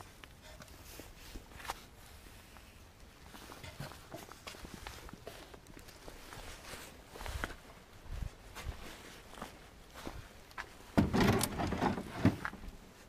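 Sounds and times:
wooden chairs knocking and clattering: 11.0s - 12.7s.

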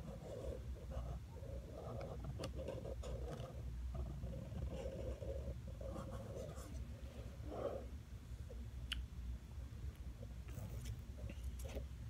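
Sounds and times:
pencil scratching on paper: 0.0s - 6.8s.

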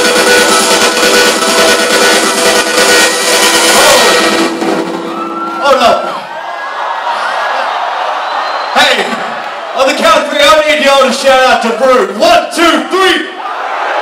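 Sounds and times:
electronic dance music: 0.0s - 6.4s
crowd cheering and whooping: 3.5s - 10.2s, 13.3s - 14.0s
loud shout: 5.1s - 10.5s, 12.6s - 14.0s.

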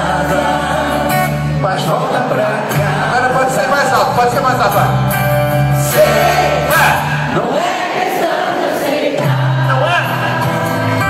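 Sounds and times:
several voices singing: 0.0s - 4.0s, 5.8s - 11.0s
pop-rock band playing live: 0.0s - 7.4s, 9.3s - 11.0s.

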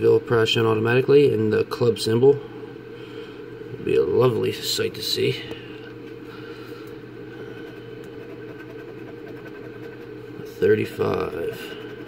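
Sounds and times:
steady low hum: 0.0s - 12.0s
coin scratching lottery ticket: 8.2s - 10.1s.

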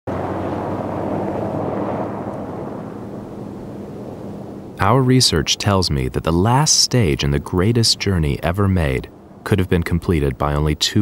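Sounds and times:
vehicle engine hum: 0.1s - 3.8s
rough road noise: 0.1s - 11.0s.

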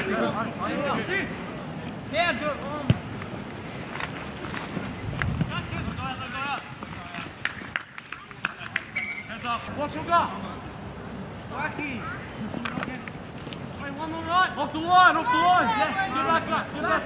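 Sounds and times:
people shouting calls: 13.8s - 17.0s.

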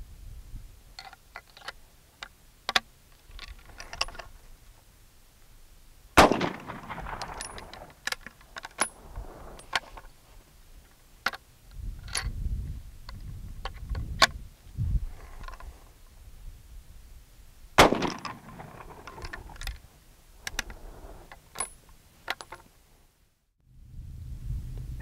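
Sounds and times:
metallic rifle action clicks: 1.0s - 4.3s, 6.2s - 9.0s, 17.8s - 19.8s
rifle shot with echo: 6.2s - 7.9s, 17.8s - 19.3s.

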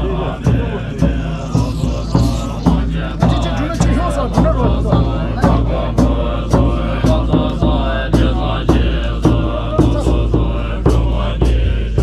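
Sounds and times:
drum beating steadily: 0.0s - 12.0s
monks chanting in low voices: 0.0s - 12.0s.

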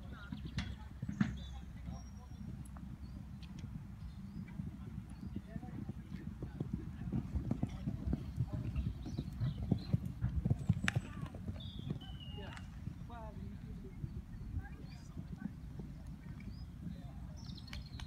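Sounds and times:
horse hoofbeats on sand: 5.0s - 13.3s.

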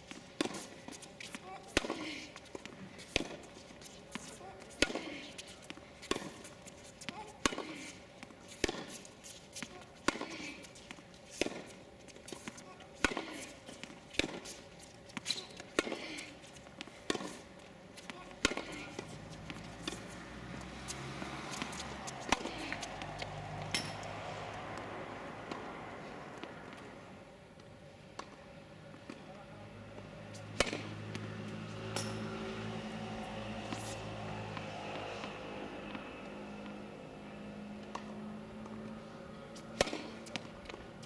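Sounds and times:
tennis racket hitting ball: 0.0s - 25.7s, 30.5s - 36.8s, 37.8s - 38.8s, 39.6s - 41.0s.

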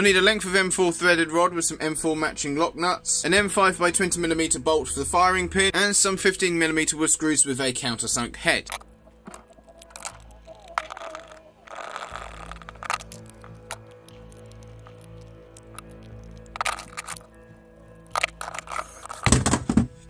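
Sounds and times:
background music: 0.0s - 20.0s
plastic parts and tools clicking: 8.7s - 19.8s.

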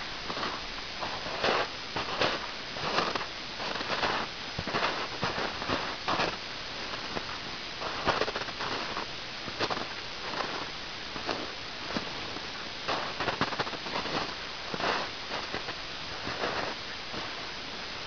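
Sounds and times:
steady background hiss: 0.0s - 18.0s
footsteps crunching through snow: 0.2s - 17.4s.

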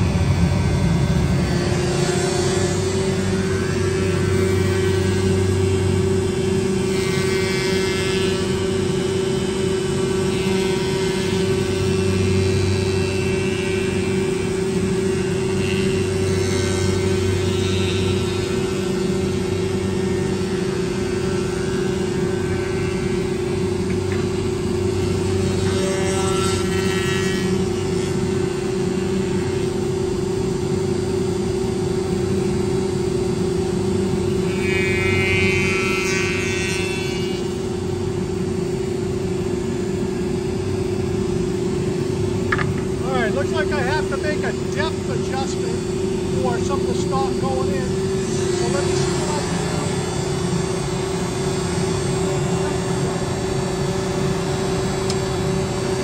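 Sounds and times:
planer humming: 34.1s - 37.7s, 39.3s - 56.0s.

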